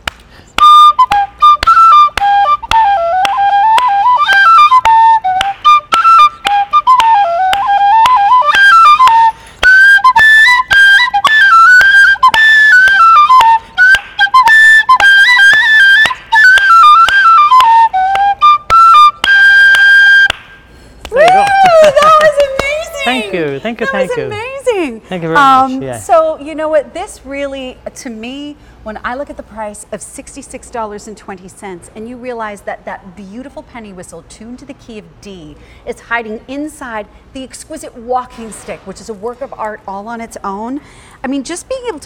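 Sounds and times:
tin whistle playing a tune: 0.5 - 22.2
voices: 21.1 - 30.4.

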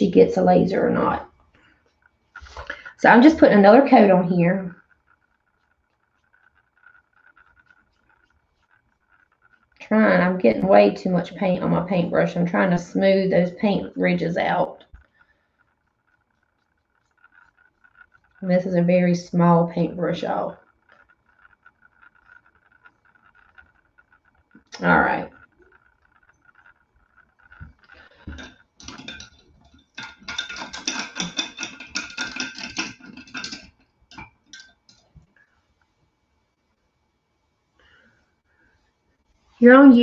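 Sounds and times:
faint steady high tone: 24.6 - 26.4.

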